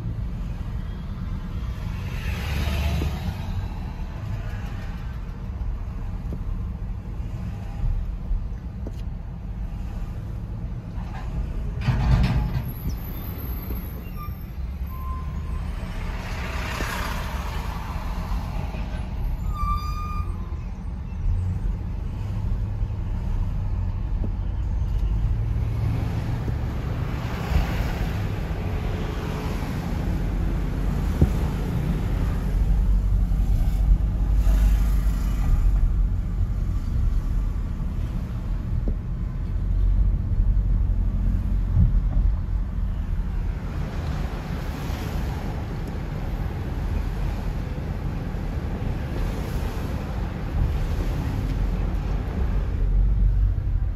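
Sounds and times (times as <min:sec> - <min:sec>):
car engine and tyre rumble: 0:00.0 - 0:53.9
passing vehicles: 0:00.0 - 0:53.9.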